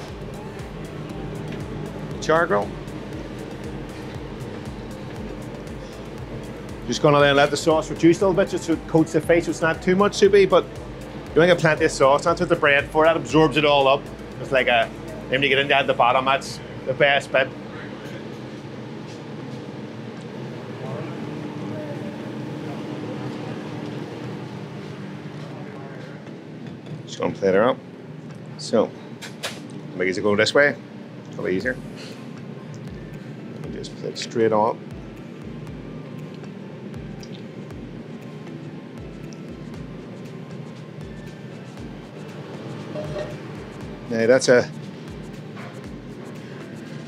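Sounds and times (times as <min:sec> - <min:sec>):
background music with low beat: 0:00.0 - 0:16.4, 0:31.6 - 0:47.0
kitchen extraction hood hum: 0:00.0 - 0:47.0
steady hum tone: 0:00.0 - 0:47.0.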